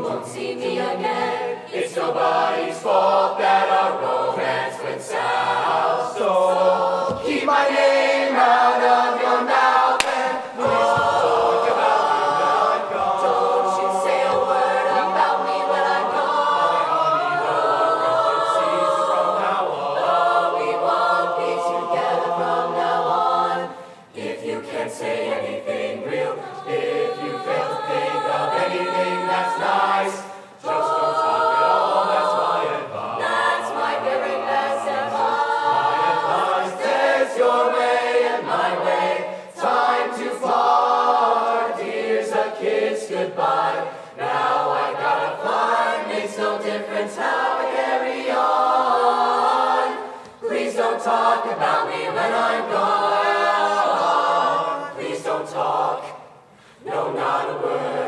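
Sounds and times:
chorus singing close harmony: 0.0 - 58.0.

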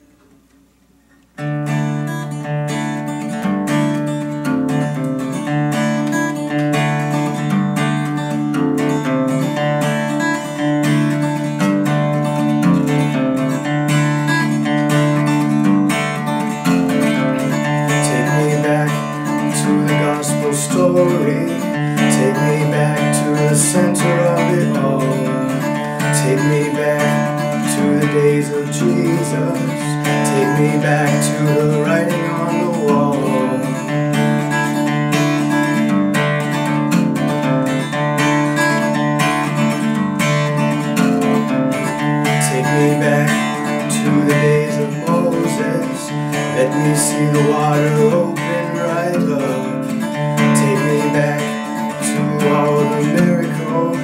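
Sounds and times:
acoustic guitar chords: 0.0 - 54.0.

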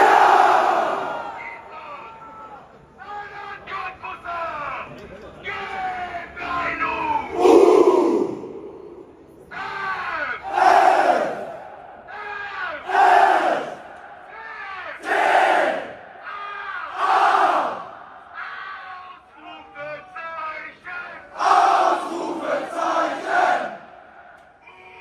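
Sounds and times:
crowd chanting: 0.0 - 1.7, 6.5 - 19.8, 21.0 - 25.0
crowd shouting in unison: 0.0 - 1.7, 7.2 - 19.8, 21.2 - 25.0.

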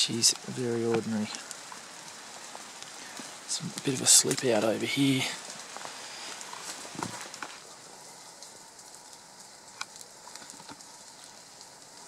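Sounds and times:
rain on foliage: 0.0 - 12.0.

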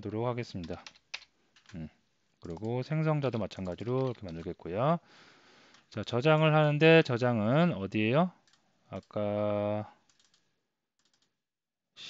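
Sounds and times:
computer mouse clicks: 0.6 - 1.8, 2.4 - 2.7, 3.4 - 4.5, 10.1 - 10.4, 11.0 - 11.3.

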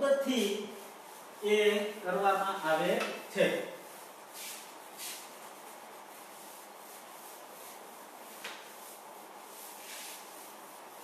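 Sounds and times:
eraser rubbing on chalkboard: 3.8 - 11.0.

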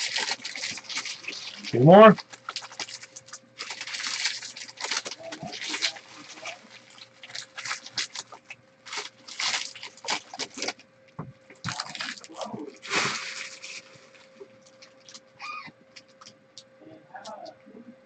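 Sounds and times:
foil wrappers crinkling: 0.0 - 10.8, 11.6 - 16.3
faint steady hum: 0.0 - 18.0.

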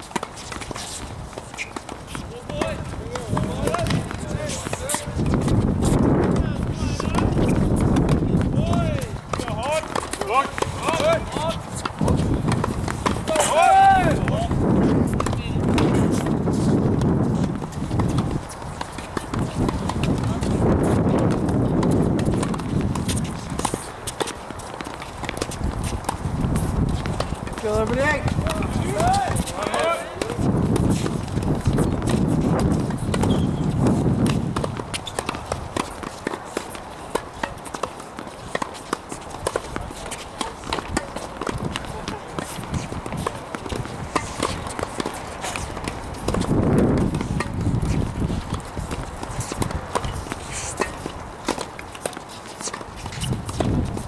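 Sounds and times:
balls bouncing on hard court: 0.0 - 54.0
tennis balls struck by rackets: 0.0 - 54.0
people talking: 2.2 - 12.5, 13.2 - 14.6, 15.2 - 16.1, 19.4 - 21.3, 27.5 - 31.0, 39.6 - 44.8.

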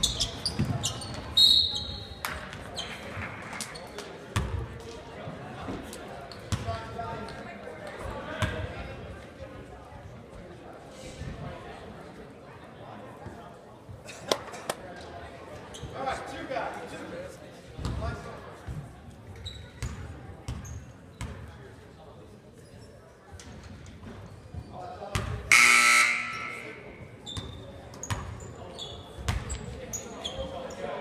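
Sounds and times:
scoreboard horn: 25.5 - 26.8.

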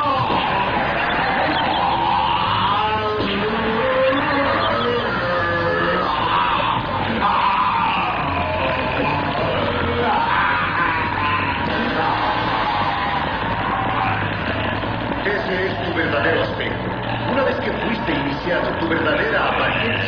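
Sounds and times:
man yelling: 0.0 - 14.3
dramatic background music: 0.0 - 20.0.

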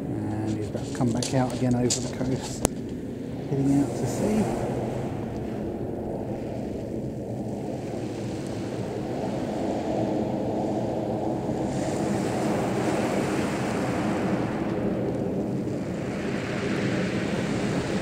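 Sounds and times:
distant jet engine rumble: 0.0 - 18.0.

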